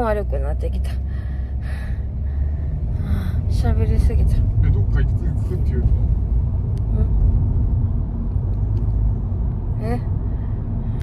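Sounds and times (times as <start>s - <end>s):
car cabin rumble: 0.0s - 11.0s.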